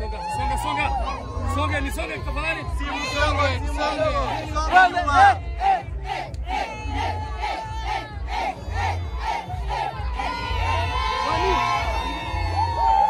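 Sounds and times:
music with bass beat: 0:00.0 - 0:13.0
women ululating and cheering: 0:00.0 - 0:13.0.

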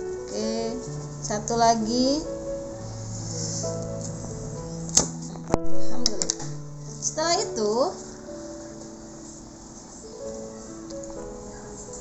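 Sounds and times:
background music held notes: 0:00.0 - 0:12.0.

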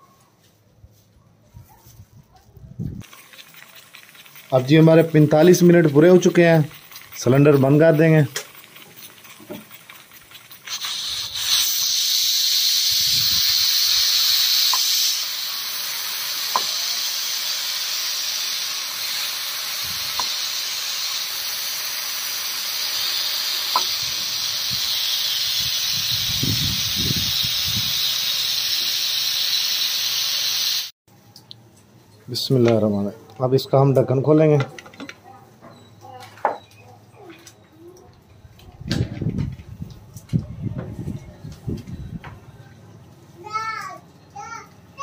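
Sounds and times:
steam hissing from pressure cooker: 0:03.1 - 0:30.9.

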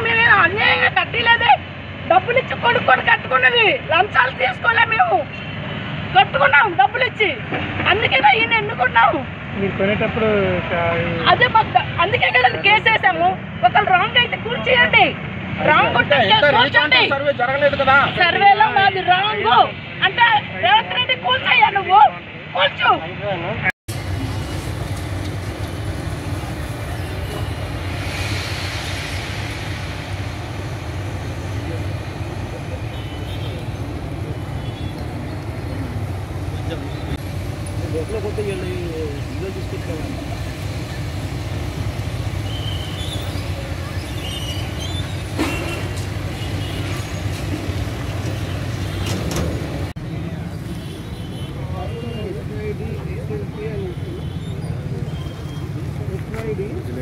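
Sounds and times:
excavator diesel engines running: 0:23.9 - 0:50.7.

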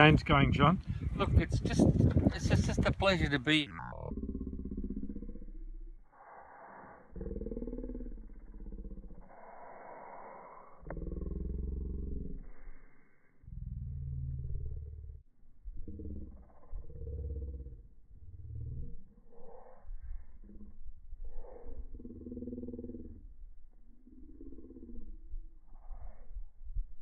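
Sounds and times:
muffled distorted man's voice: 0:00.0 - 0:04.0.

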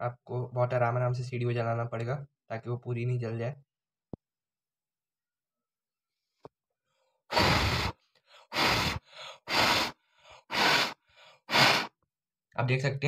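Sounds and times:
person blowing hard puffs: 0:07.3 - 0:12.0.

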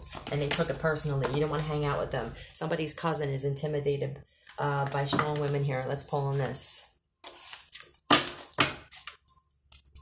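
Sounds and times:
cards rustling: 0:07.2 - 0:10.0.

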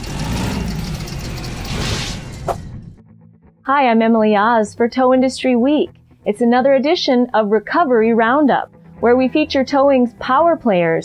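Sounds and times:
heavy truck engine running: 0:00.0 - 0:03.0
rising whoosh: 0:00.0 - 0:03.1.

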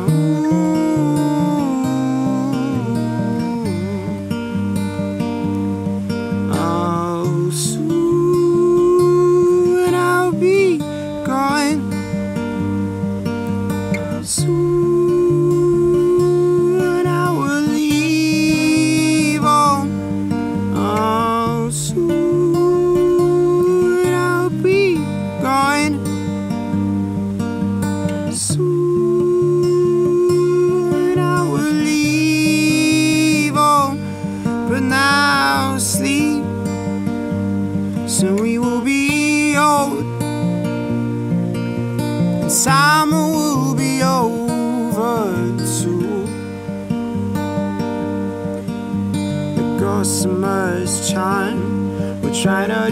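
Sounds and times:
acoustic guitar strumming: 0:00.0 - 0:52.9.

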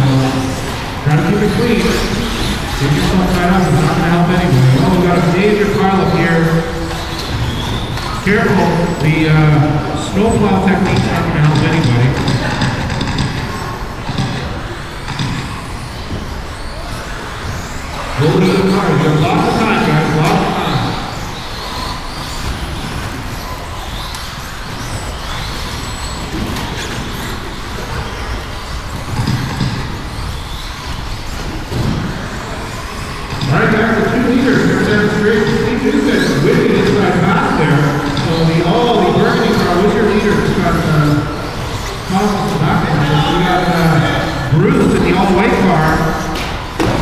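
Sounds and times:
man's voice: 0:00.0 - 0:06.8, 0:08.2 - 0:12.2, 0:18.2 - 0:21.0, 0:33.4 - 0:41.4, 0:42.1 - 0:46.2
rc car motor whine: 0:13.5 - 0:46.8.

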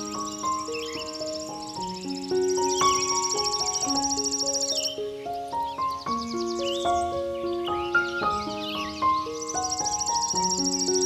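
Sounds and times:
pulsing insect trill: 0:00.0 - 0:05.0, 0:09.4 - 0:11.0
short chirping calls: 0:00.0 - 0:11.0
slow piano music: 0:00.0 - 0:11.0.

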